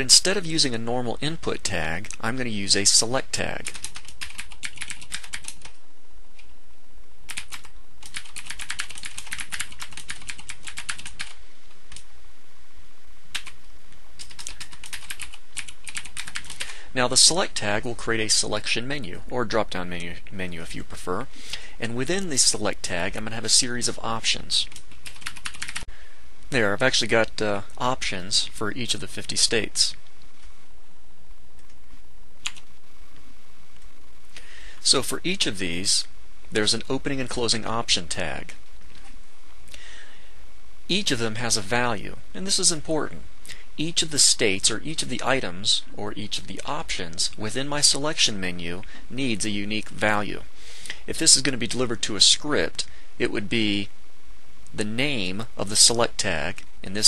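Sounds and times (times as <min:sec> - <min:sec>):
typing on computer keyboard: 0:03.6 - 0:05.8, 0:07.3 - 0:12.0, 0:13.4 - 0:13.6, 0:14.2 - 0:16.7, 0:24.7 - 0:25.9.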